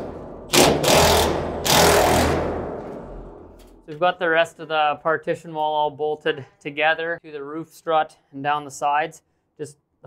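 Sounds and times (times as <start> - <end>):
impact driver hammering bolt: 0.0 - 3.0.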